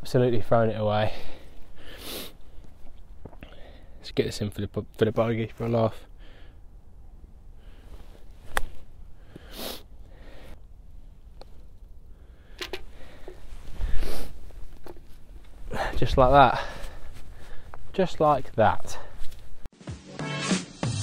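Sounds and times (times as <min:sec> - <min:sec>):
sniffing and breathing: 0:01.2 - 0:02.7, 0:09.2 - 0:10.6.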